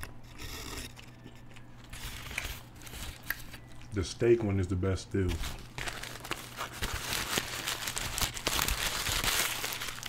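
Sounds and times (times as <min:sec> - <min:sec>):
soft chewing: 0:00.0 - 0:04.0.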